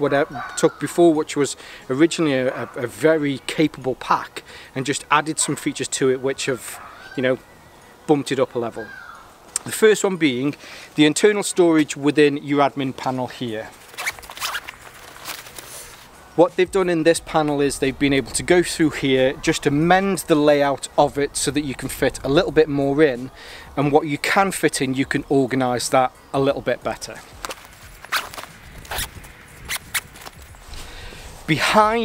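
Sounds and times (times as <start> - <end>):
fabric handling: 13.6 - 16.2, 27.3 - 29.2
zipper being pulled open: 13.8 - 16.1, 27.5 - 31.4.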